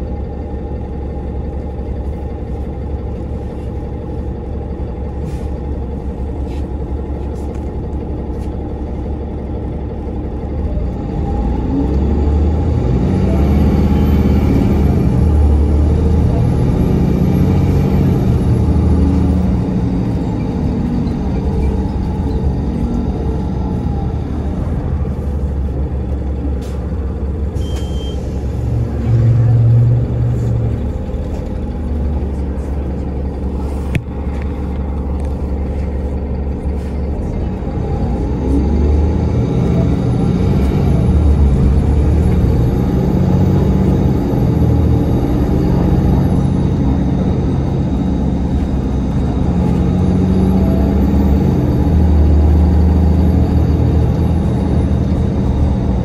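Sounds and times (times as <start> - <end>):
bus engine humming: 0.0 - 56.0
road noise: 0.0 - 56.0.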